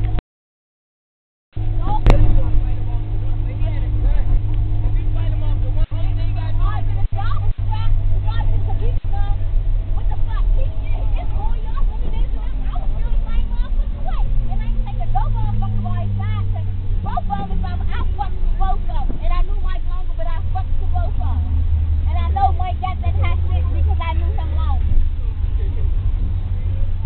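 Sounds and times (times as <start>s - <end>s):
bus engine drone: 0.0s - 0.2s, 1.6s - 27.0s
passengers talking: 1.6s - 27.0s.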